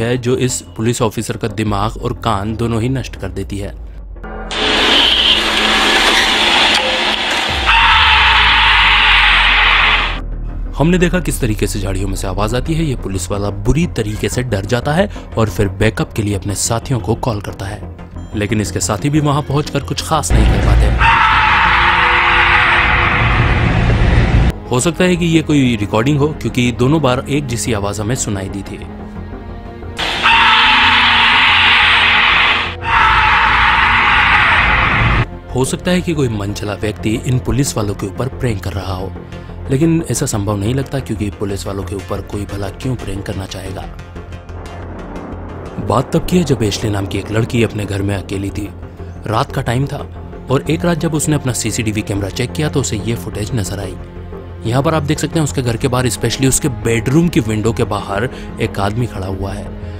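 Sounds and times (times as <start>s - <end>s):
loud harsh noise blasts: 4.4s - 10.2s, 20.3s - 24.5s, 30.0s - 35.3s.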